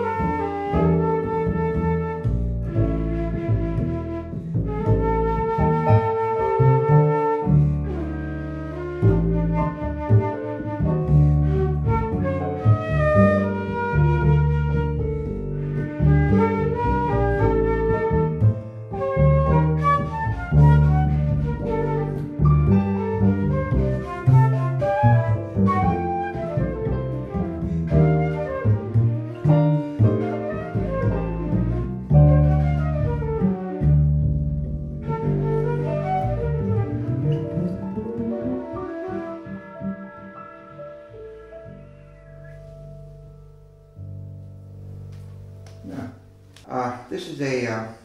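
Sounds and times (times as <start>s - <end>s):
flute melody: 0.0s - 46.9s
upright double bass: 0.0s - 47.9s
digital piano: 0.0s - 48.0s.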